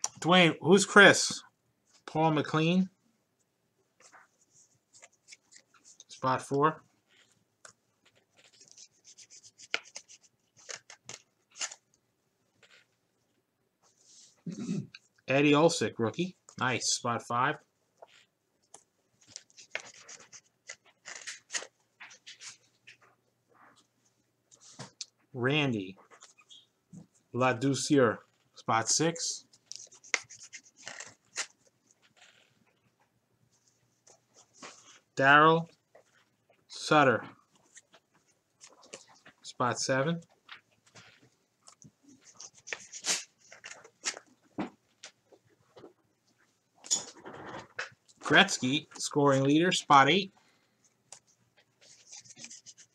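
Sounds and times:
trading cards rustling: 7.1 - 11.8, 18.1 - 23.0, 29.4 - 32.6, 40.4 - 45.2, 51.1 - 52.9.

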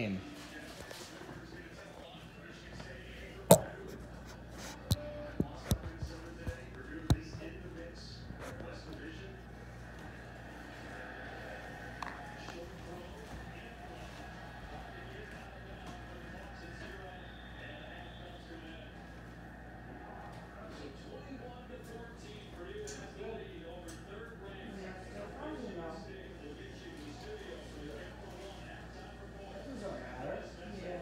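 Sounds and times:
faint indistinct voices: 0.0 - 31.0.

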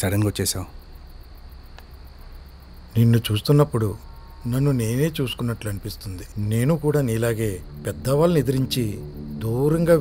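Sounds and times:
crickets chirping: 0.0 - 10.0
low steady hum: 0.0 - 10.0.

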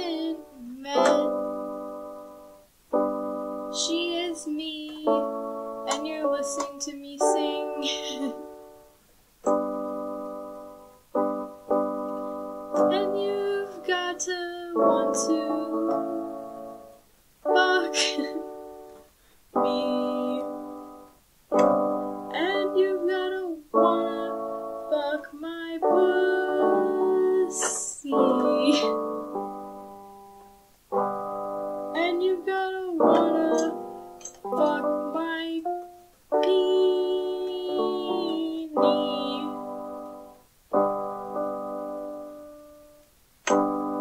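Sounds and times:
piano chords: 0.0 - 44.0.

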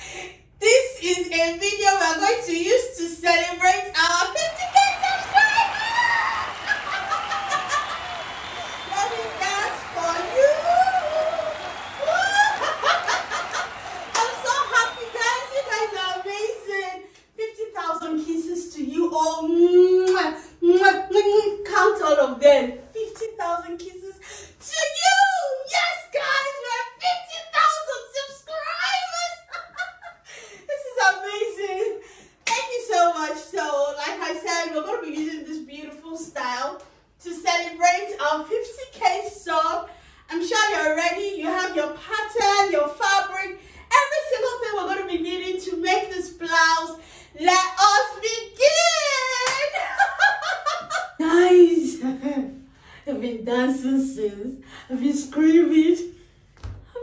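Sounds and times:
woman speaking lively: 0.0 - 7.9, 8.8 - 56.2
woman squealing and laughing: 4.8 - 8.2, 10.4 - 15.1.

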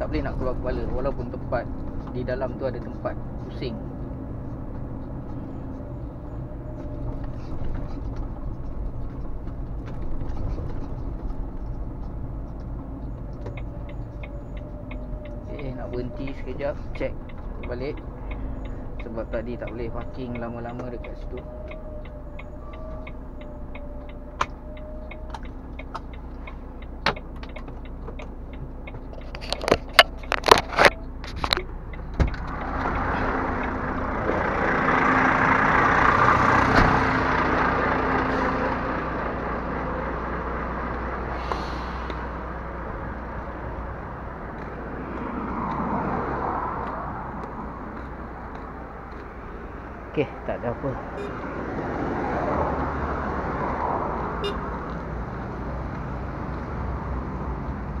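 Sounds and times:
low engine hum: 0.0 - 58.0
road traffic passing: 0.0 - 58.0
sharp clicks and knocks: 6.8 - 34.4.

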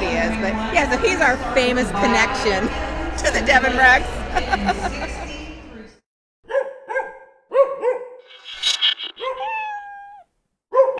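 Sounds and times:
small dog barking: 6.5 - 8.2.

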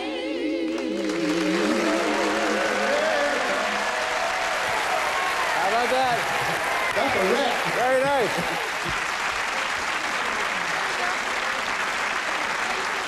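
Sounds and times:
audience applauding: 0.7 - 13.0.

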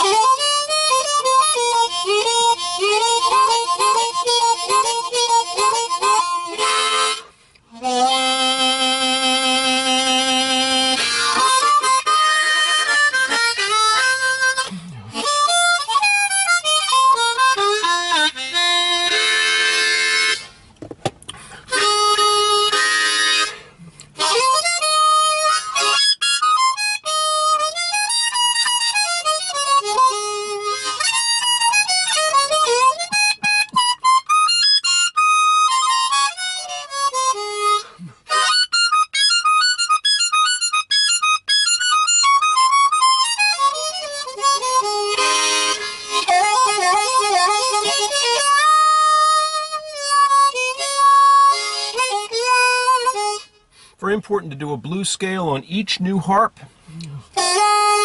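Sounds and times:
blues harmonica: 0.0 - 58.0.

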